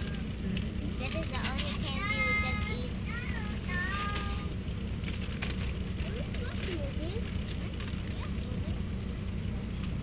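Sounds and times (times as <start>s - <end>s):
faint children's voices: 0.0s - 4.6s, 5.6s - 10.0s
bus engine rumble: 0.0s - 10.0s.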